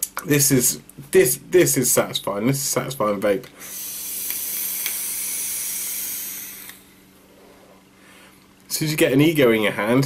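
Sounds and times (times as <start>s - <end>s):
e-cigarette coil sizzling: 3.6s - 7.0s
soft exhale: 3.6s - 8.5s.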